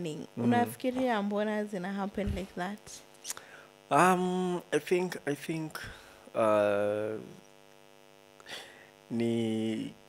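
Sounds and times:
faint electrical hum: 0.0 - 10.0
person's wordless hesitation sound: 0.4 - 0.9, 6.3 - 7.4.

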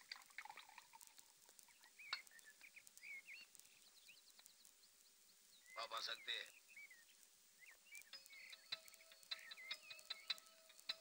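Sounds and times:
bird chirps: 0.0 - 11.0
faint background music ticking beat: 0.0 - 11.0.

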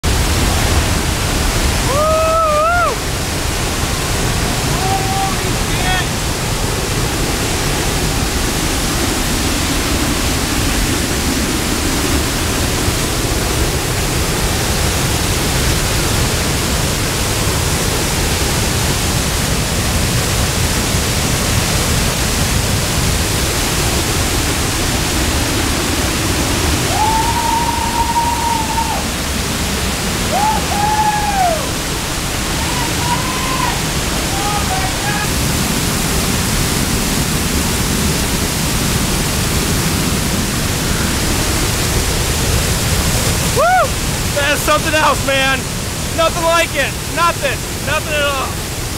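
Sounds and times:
waterfall roaring: 0.0 - 48.9
person calling out: 4.7 - 6.1, 46.2 - 48.6.

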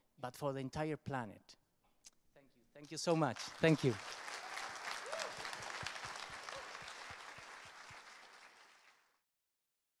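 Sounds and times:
audience applauding: 3.1 - 9.2.

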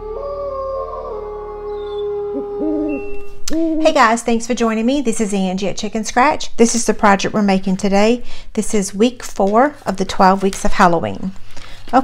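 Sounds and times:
owl hooting: 0.0 - 4.0.

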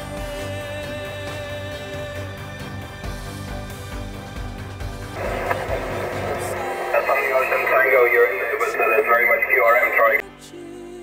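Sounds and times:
music with low beat: 5.2 - 10.0
crackly radio voice: 5.2 - 10.2.

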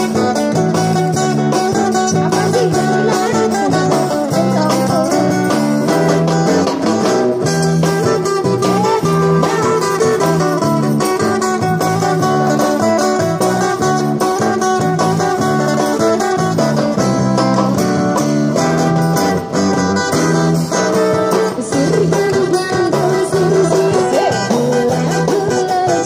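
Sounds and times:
busking band playing upbeat song: 0.0 - 26.0
guitar: 0.0 - 26.0.

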